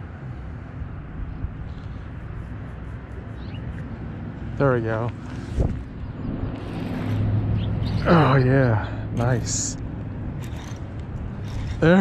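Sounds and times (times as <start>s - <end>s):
fishing reel being cranked: 10.4s - 12.0s.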